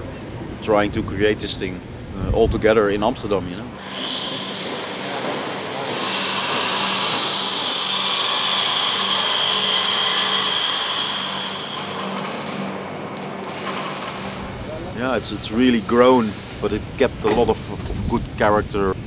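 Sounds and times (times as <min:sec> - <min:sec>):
power tool whining: 0:03.8 - 0:17.1.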